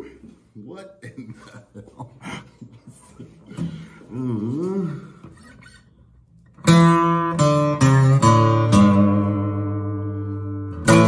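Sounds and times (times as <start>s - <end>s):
acoustic guitar strumming: 6.5s - 11.0s.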